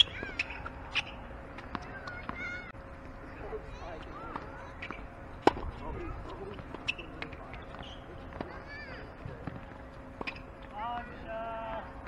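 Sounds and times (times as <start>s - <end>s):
racket hitting tennis ball: 4.3s - 5.7s.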